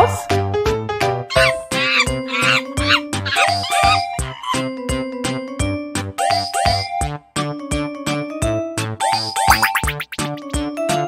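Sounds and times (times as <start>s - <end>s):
monkey squeaky cries: 1.3s - 4.9s
children's music with steady beat: 4.8s - 11.0s.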